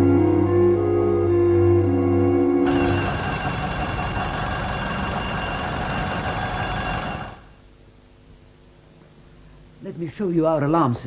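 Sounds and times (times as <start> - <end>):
electric bell ringing: 2.6 - 7.6.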